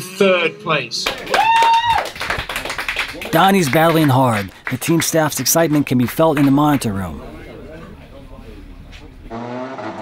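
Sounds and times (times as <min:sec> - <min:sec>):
group hand clapping: 0:01.0 - 0:07.2.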